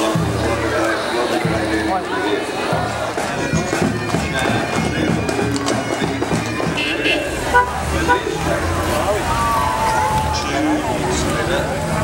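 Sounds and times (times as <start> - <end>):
bagpipe band playing: 0.0 - 12.0
crowd voices: 0.0 - 12.0.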